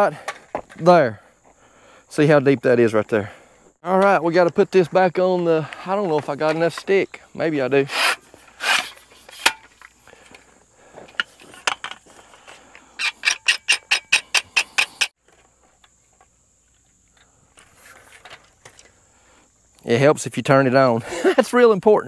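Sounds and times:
metal rod scraping and knocking: 0:08.0 - 0:09.9, 0:13.0 - 0:15.1.

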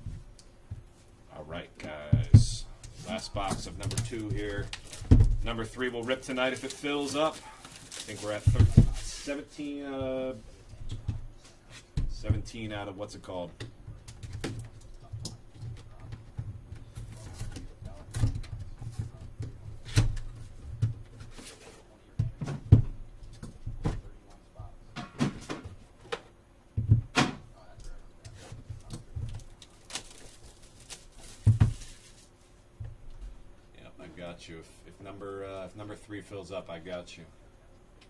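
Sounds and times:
cardboard boxes knocking and tapping: 0:08.3 - 0:09.1.

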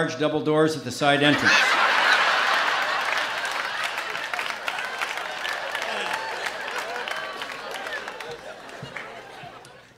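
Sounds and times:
audience applauding: 0:01.4 - 0:09.9.

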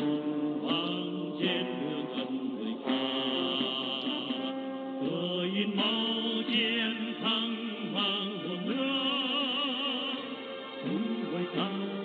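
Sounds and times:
chant-like singing: 0:00.0 - 0:12.0.

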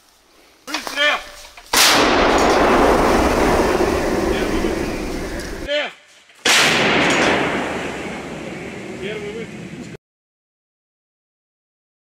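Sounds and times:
howitzer firing blast: 0:01.7 - 0:05.7, 0:06.4 - 0:09.6.

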